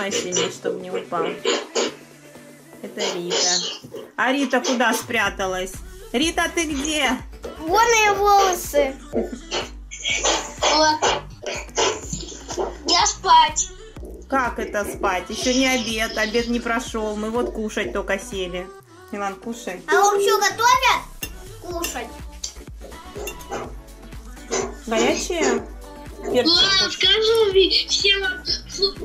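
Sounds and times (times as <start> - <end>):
voices talking: 0.0 - 2.1, 2.8 - 29.0
background music: 0.0 - 29.0.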